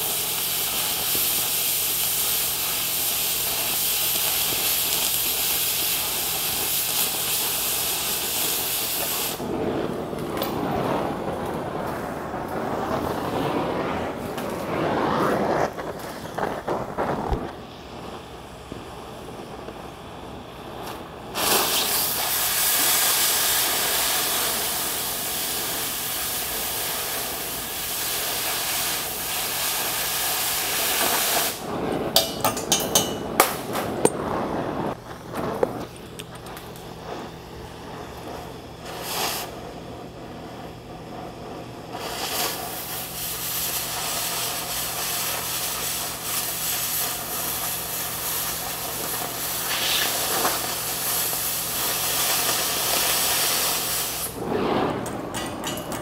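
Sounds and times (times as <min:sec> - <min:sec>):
cutting torch hissing: 0:00.0 - 0:56.0.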